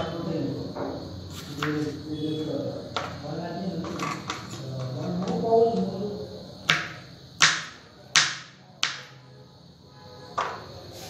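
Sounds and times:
knife chopping on wooden board: 6.7s - 9.1s.

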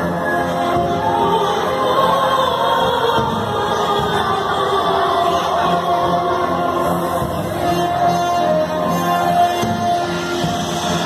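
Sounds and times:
choir singing a hymn: 0.2s - 9.4s.

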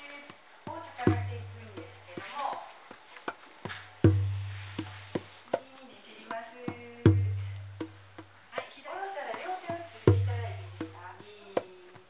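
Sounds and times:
light sharp drum taps: 0.0s - 12.0s.

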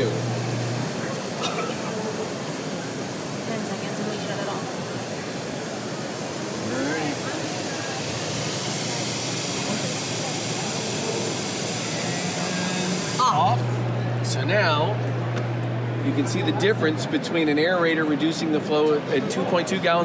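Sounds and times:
faucets running into glass: 0.0s - 13.7s.

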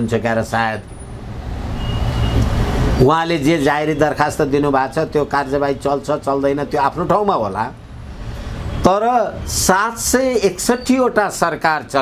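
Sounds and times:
passing vehicle rumble: 0.4s - 9.8s.

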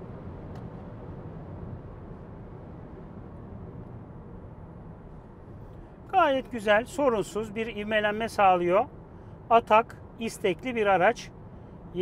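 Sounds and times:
road and wind noise in car: 0.0s - 12.0s.

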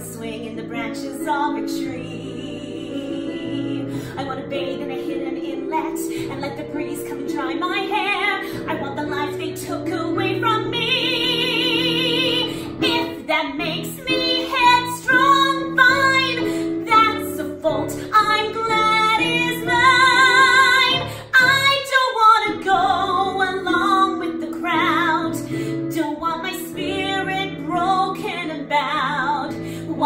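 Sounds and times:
keyboard accompaniment: 0.0s - 30.0s
woman singing a ballad: 0.0s - 30.0s.

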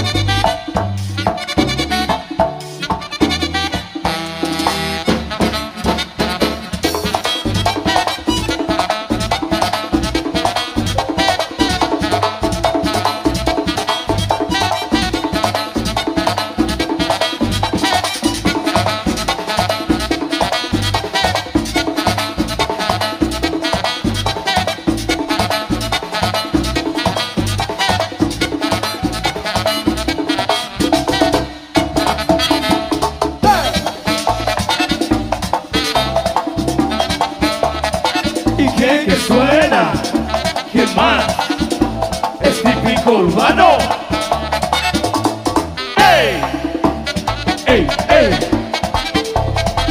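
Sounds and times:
merengue band playing: 0.0s - 49.9s.

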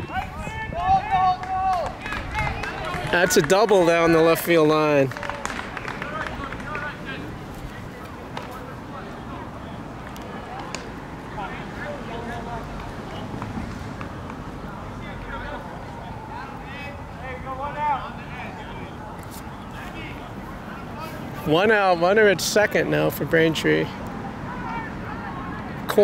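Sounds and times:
steady outdoor background: 0.0s - 26.0s.

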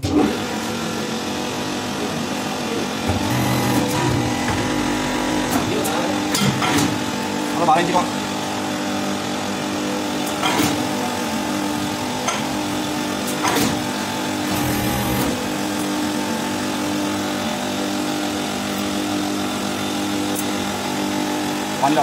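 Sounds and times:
motor humming: 0.4s - 9.3s, 11.5s - 16.4s.

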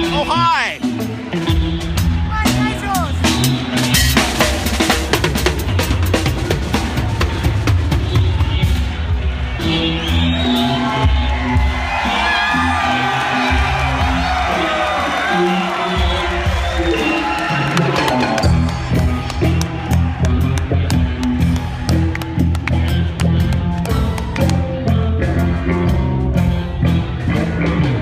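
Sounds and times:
drum kit: 0.0s - 28.0s.

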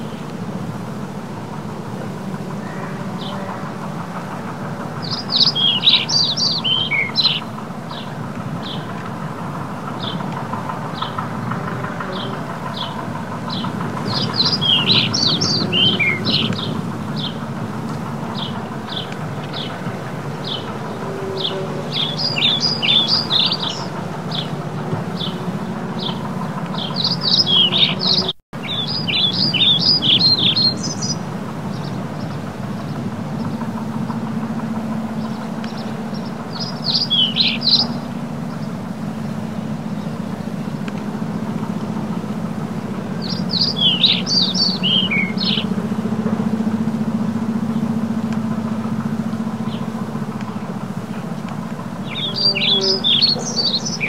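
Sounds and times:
steady low rumble: 0.0s - 54.0s
small birds chirping: 2.1s - 54.0s.

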